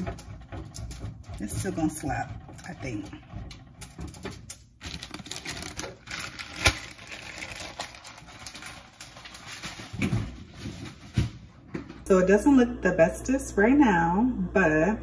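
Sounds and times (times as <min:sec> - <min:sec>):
cheese grating on metal grater: 0:00.0 - 0:09.4
plastic bag rustling: 0:04.6 - 0:11.4.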